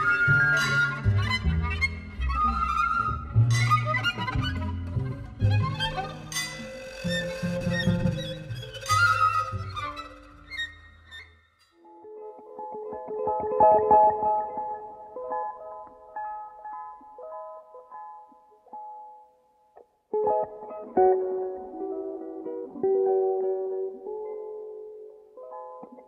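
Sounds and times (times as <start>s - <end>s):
walking double bass: 0.0s - 11.1s
violin melody: 0.0s - 11.3s.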